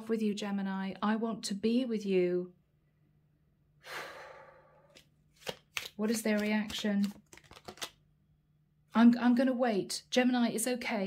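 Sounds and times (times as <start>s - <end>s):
woman breathing: 3.8s - 5.0s.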